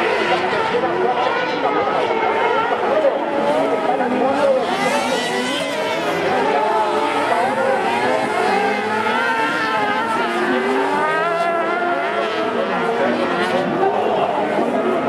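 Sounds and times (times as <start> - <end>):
buggy engines revving high: 0.0 - 15.0.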